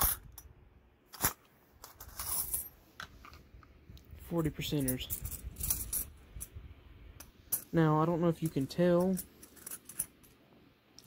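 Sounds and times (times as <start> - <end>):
coins clinking: 1.2 - 2.8, 4.6 - 6.5, 8.3 - 10.4.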